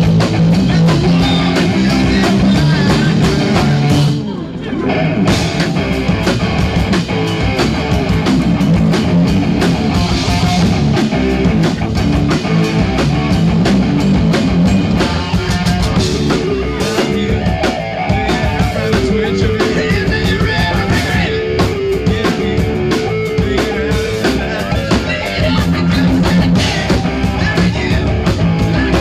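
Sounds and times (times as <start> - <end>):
rock band playing live: 0.0 - 29.0.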